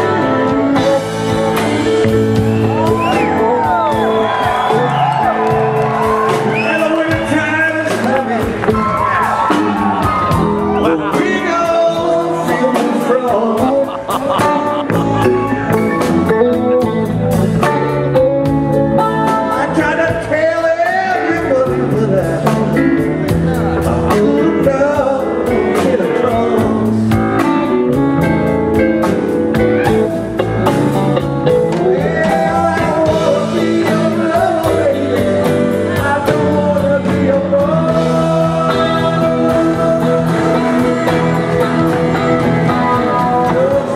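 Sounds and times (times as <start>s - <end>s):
lead guitar line bending: 0.0s - 20.4s, 21.2s - 43.9s
live rock band playing: 0.0s - 43.9s.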